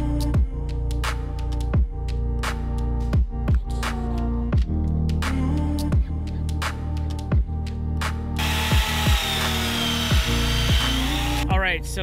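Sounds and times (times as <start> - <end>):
music with kick-drum beat: 0.1 - 12.0
handheld power tool whining: 8.4 - 11.4.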